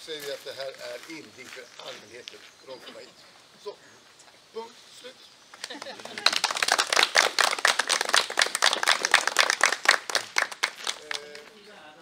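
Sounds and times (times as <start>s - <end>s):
people applauding: 5.6s - 11.5s.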